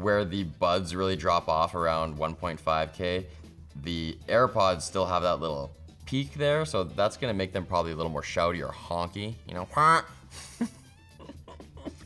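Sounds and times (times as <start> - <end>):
quiet background music: 0.0 - 12.0
man laughing softly: 10.2 - 12.0.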